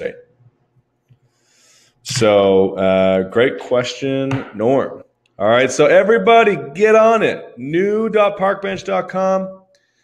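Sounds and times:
man speaking: 0.0 - 0.3, 2.0 - 9.7
faint breath in: 1.2 - 2.0.

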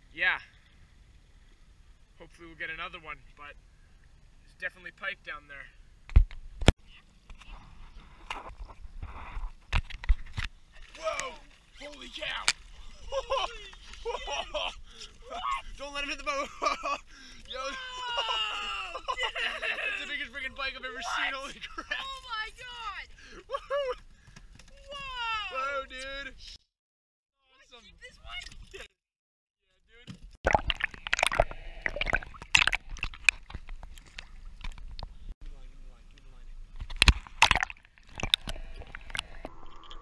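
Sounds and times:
water splashing: 30.4 - 35.2, 36.8 - 40.0.

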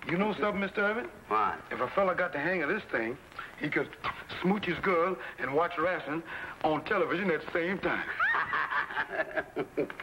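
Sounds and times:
choppy chuckling laughter: 8.1 - 10.0.

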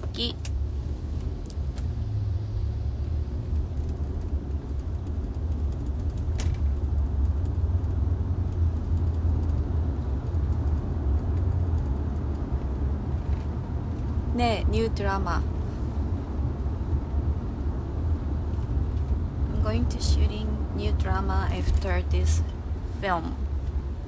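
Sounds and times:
vehicle rumble from inside cabin: 0.0 - 24.0.

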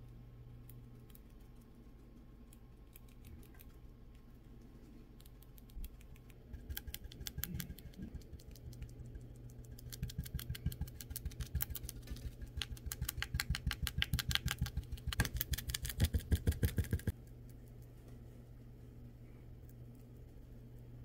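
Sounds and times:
brush tapping paint on canvas: 6.5 - 8.9, 10.0 - 17.1.

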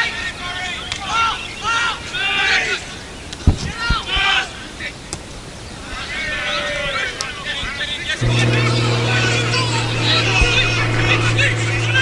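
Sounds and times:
dull low thumps: 8.2 - 12.0.

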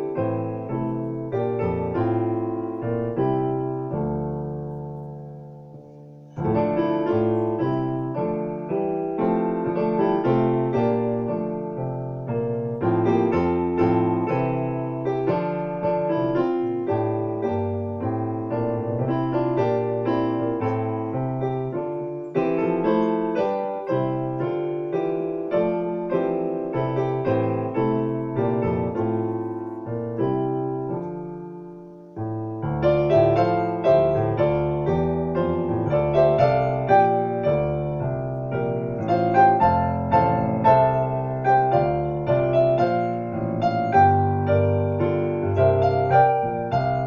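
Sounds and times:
piano playing chords: 0.0 - 47.0.

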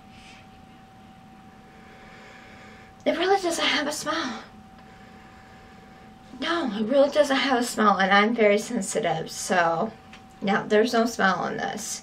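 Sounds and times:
faint electrical whine: 0.0 - 12.0.

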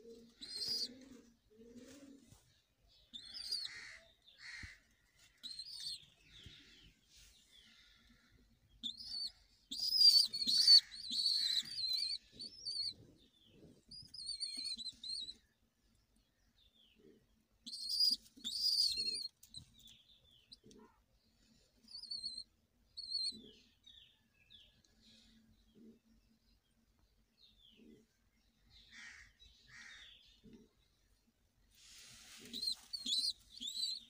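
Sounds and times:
young pigeons squeaking: 0.0 - 15.6, 16.9 - 24.3, 31.8 - 34.0.

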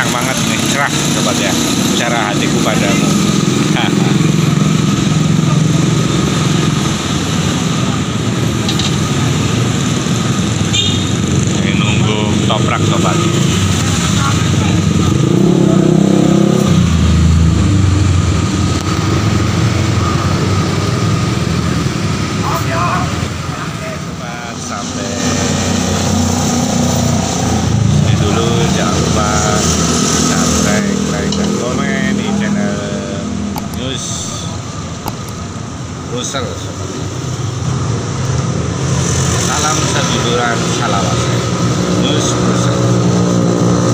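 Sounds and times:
people's voices: 0.0 - 9.5, 11.4 - 15.5, 22.3 - 26.2, 27.7 - 35.2, 36.0 - 36.9, 39.4 - 43.0
motorcycle and car engines passing: 0.0 - 43.9.

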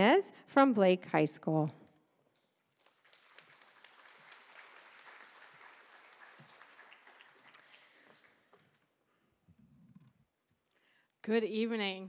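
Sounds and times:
faint audience applause: 2.7 - 9.0.

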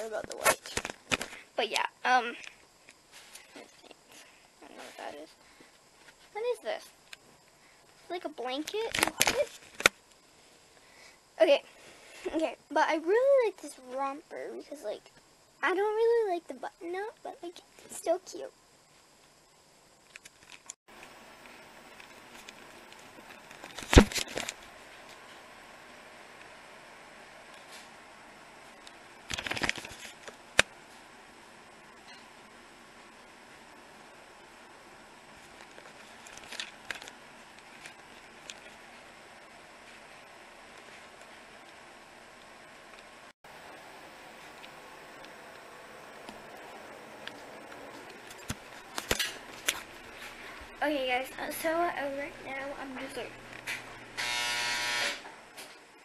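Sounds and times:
faint steady hum: 0.0 - 56.0.

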